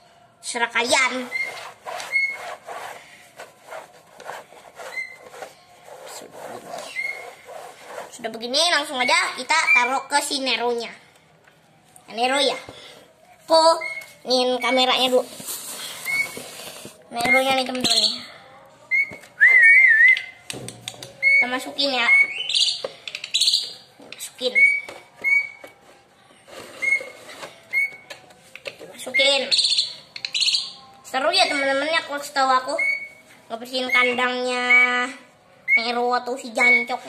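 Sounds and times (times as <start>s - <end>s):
towel scrubbing bird cage part: 1.0s - 8.2s
wavering whistle: 1.2s - 2.6s, 16.0s - 16.4s, 18.9s - 20.4s.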